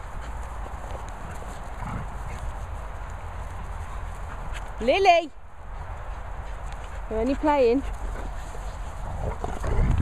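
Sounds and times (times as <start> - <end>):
dog paw footfalls on grass: 0.0 - 9.7.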